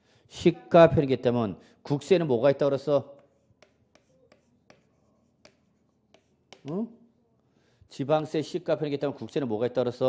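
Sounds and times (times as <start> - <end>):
chalk tapping on chalkboard: 3.1 - 6.9.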